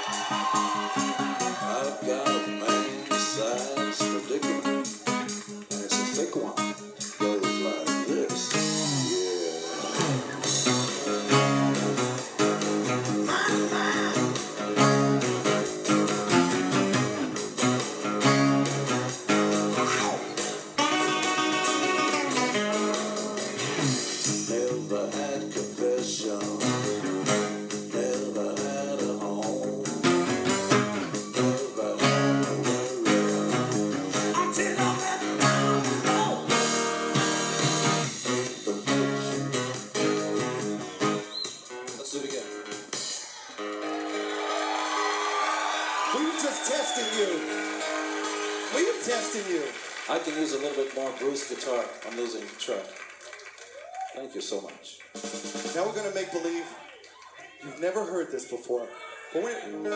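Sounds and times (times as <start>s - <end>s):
rock band with drums and bass: 0.0s - 46.1s, 55.1s - 56.1s
acoustic guitar playing rock chords: 0.0s - 50.2s, 59.6s - 59.9s.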